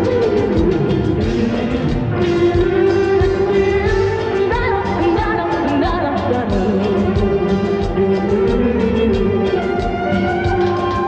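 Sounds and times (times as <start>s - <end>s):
band playing a steady beat: 0.0s - 11.0s
woman singing: 0.0s - 11.0s.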